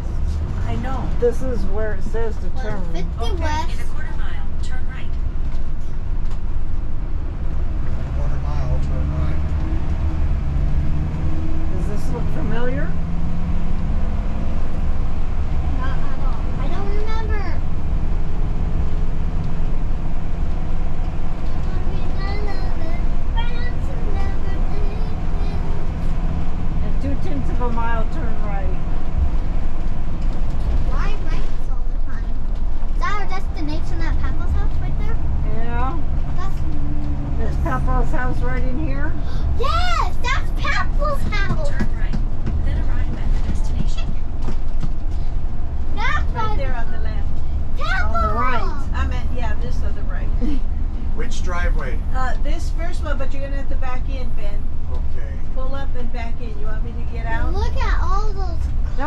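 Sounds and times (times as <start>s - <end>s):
engine and road drone: 0.0s - 59.0s.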